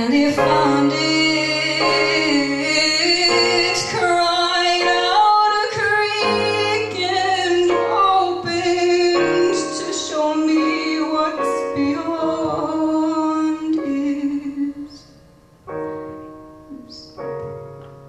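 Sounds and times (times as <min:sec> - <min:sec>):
digital piano accompaniment: 0:00.0 - 0:18.0.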